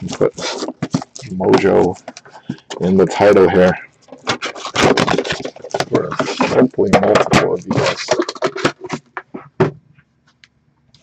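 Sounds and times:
cellophane wrap crinkling: 0.0 - 9.1
cardboard rubbing and scraping: 0.0 - 9.7.

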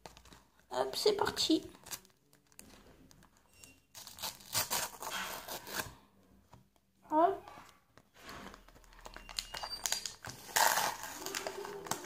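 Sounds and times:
sticker packet wrapper tearing: 0.0 - 5.9, 8.5 - 12.0.

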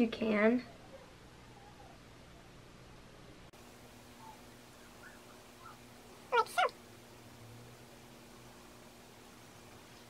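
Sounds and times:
faint chirps: 4.0 - 6.7
high-pitched animal calls: 4.2 - 6.8.

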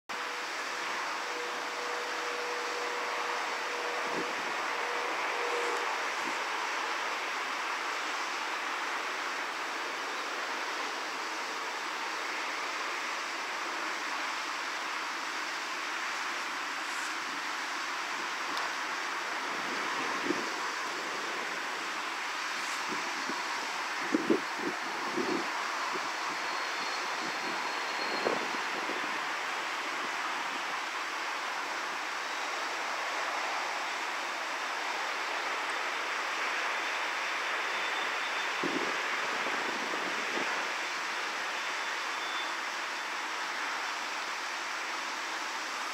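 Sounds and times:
rushing outdoor background noise: 0.0 - 45.9.

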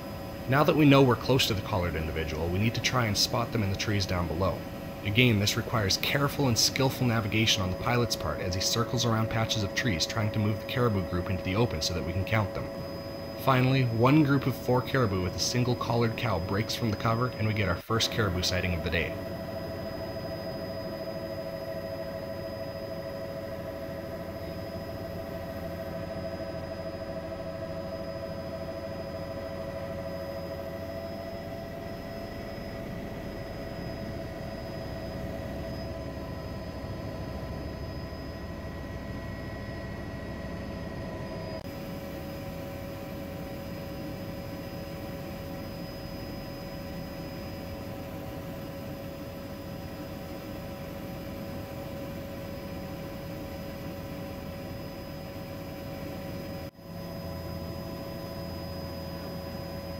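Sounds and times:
helicopter engine and rotor drone: 0.0 - 59.9
helicopter whine: 0.0 - 59.9.

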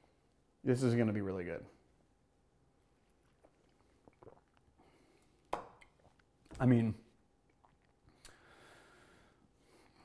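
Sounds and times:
person breathing out: 8.2 - 10.0.

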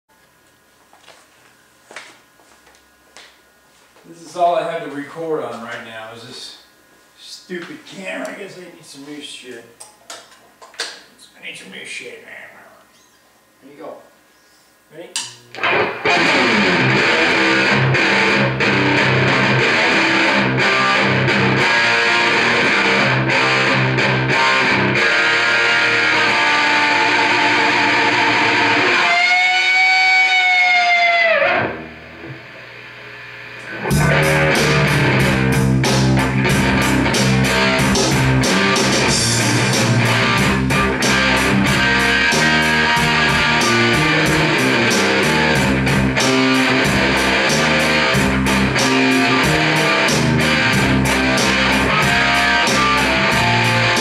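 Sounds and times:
electric guitar through amplifier: 15.0 - 54.0.

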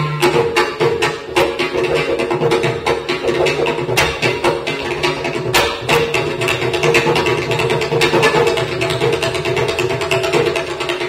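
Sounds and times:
bamboo flute melody: 0.0 - 1.7
percussion strokes: 0.0 - 11.0.

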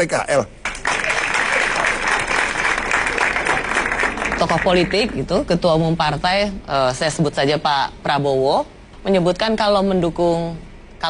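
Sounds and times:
studio audience applauding: 0.6 - 5.4.

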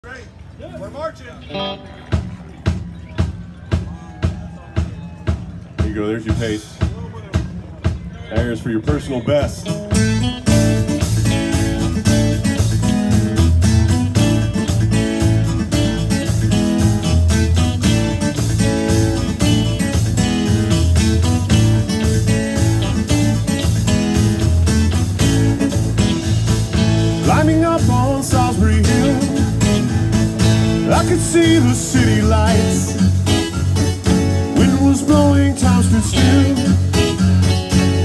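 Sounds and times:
pop-rock band playing: 1.4 - 38.0.

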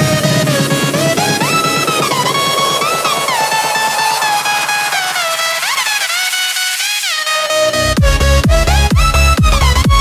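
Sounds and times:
electronic synth music: 0.0 - 10.0.

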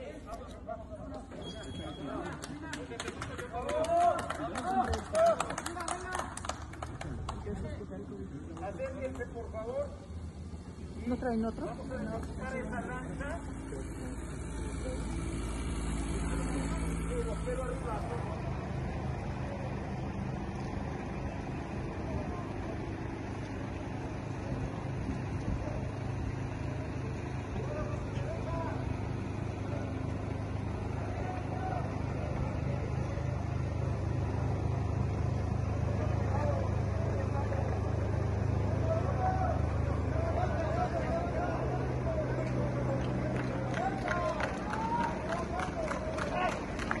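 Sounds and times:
low engine rumble: 0.0 - 47.0
faint voices calling out: 13.1 - 47.0.

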